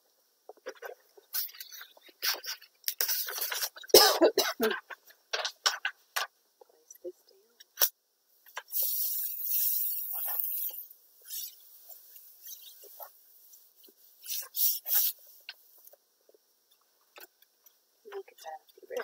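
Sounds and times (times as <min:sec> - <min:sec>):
paper rustling: 0:00.6 - 0:03.9
paper and plastic wrap crinkling: 0:00.6 - 0:04.0.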